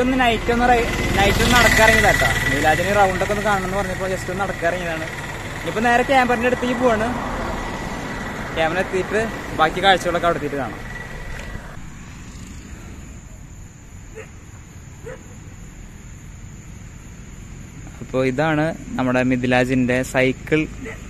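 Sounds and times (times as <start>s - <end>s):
men's voices: 0.0s - 7.6s, 8.4s - 11.0s, 17.9s - 21.0s
vehicle engine running: 0.0s - 13.8s, 15.3s - 21.0s
high-pitched insect drone: 0.0s - 19.4s
road traffic noise: 0.0s - 21.0s.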